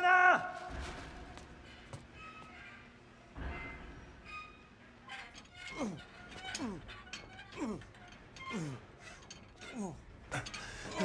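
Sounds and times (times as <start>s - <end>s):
scraping creaking squeal: 1.6s - 11.0s.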